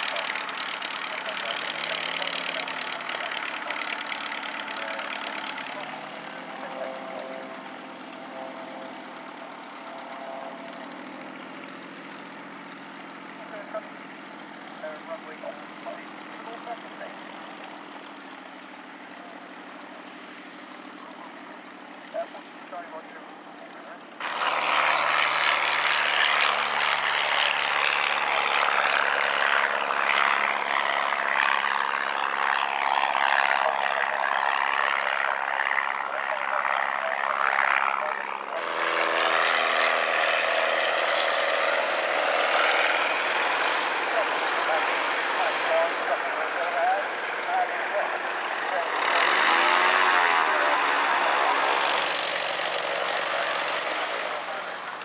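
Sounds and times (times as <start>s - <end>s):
plane passing overhead: 0.0s - 55.0s
propeller aircraft engine drone: 0.0s - 55.0s.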